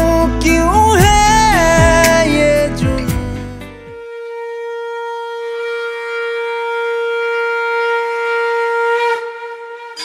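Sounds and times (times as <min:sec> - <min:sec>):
long held wind instrument note: 0:01.1 - 0:10.0.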